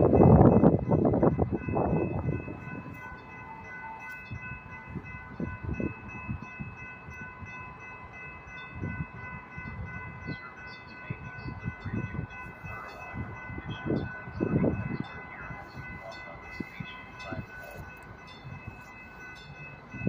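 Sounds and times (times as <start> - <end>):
crossing warning bells ringing: 0.0 - 20.0.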